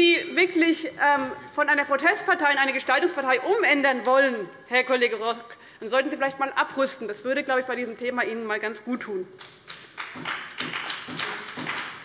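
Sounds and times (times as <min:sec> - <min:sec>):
scattered applause: 0:09.4 - 0:12.0.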